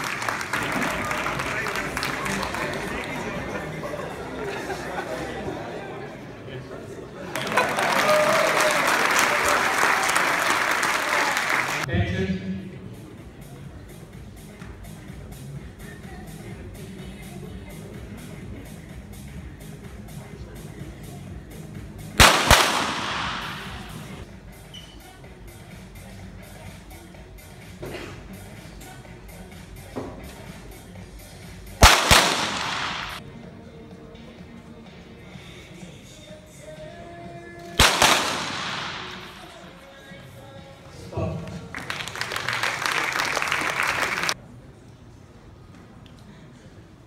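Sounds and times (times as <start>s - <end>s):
background music: 0.0s - 44.4s
pistol shots: 22.2s - 24.2s, 31.8s - 33.2s, 37.8s - 39.5s.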